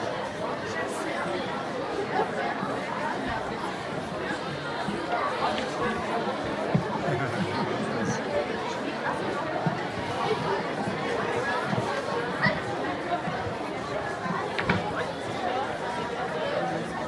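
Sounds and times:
many voices chattering: 0:00.0 - 0:17.0.

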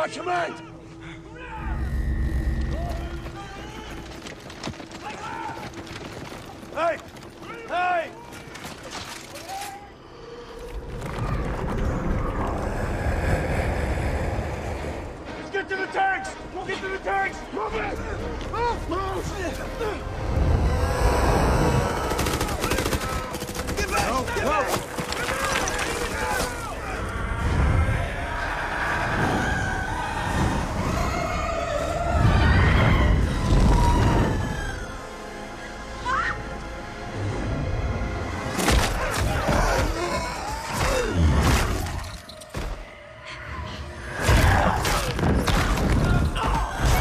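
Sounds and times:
action film music: 0:00.0 - 0:47.0
low rumble: 0:10.4 - 0:15.4.

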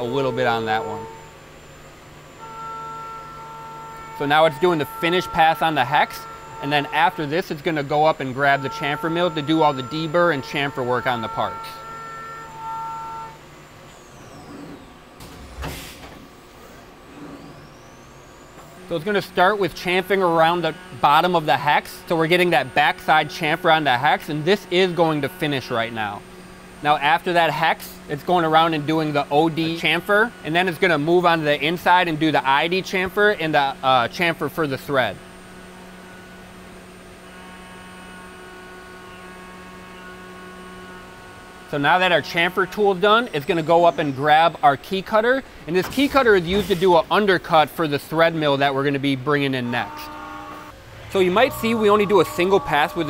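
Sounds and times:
cnc mill cutting tone: 0:00.0 - 0:53.0
spindle whine: 0:00.0 - 0:53.0.

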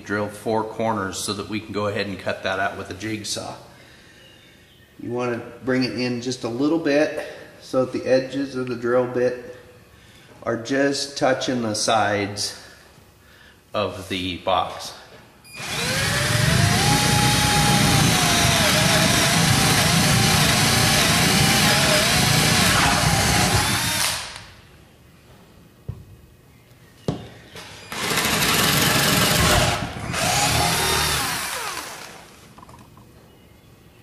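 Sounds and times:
cordless drill boring into wood: 0:15.6 - 0:24.5, 0:27.9 - 0:32.4.

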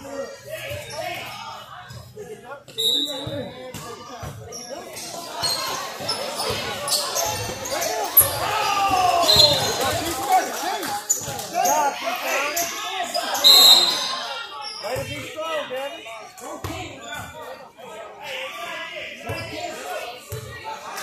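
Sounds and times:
sneaker squeaks: 0:02.7 - 0:10.0, 0:12.4 - 0:15.2
people shouting: 0:07.8 - 0:10.5.

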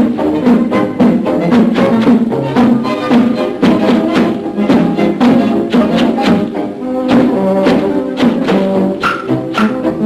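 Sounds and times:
military marching band: 0:00.0 - 0:10.0.

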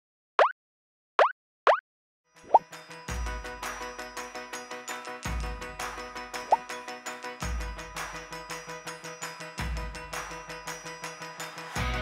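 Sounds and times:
cartoon plop sound effects: 0:01.2 - 0:01.8
music with bass beat: 0:05.2 - 0:06.7, 0:07.4 - 0:11.1, 0:11.7 - 0:12.0.

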